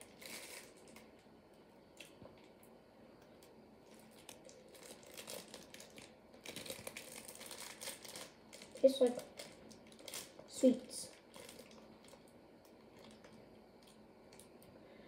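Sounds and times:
plastic wrap crinkling: 0:00.0 - 0:01.2, 0:03.3 - 0:14.7.

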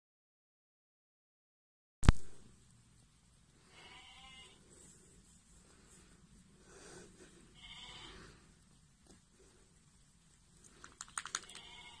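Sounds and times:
sheep bleating: 0:03.7 - 0:04.6, 0:07.5 - 0:08.3, 0:11.4 - 0:12.0.

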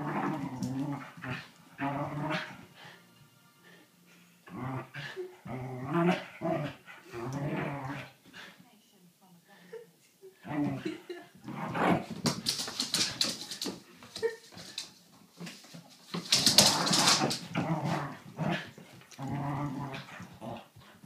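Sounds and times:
dogs growling: 0:00.0 - 0:03.0, 0:04.5 - 0:08.5, 0:16.3 - 0:21.0
dogs scuffling: 0:11.4 - 0:21.0.

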